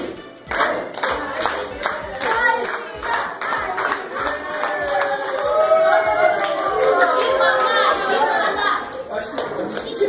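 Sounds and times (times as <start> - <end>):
people singing along: 0.0 - 4.7
group clapping in time: 0.0 - 10.0.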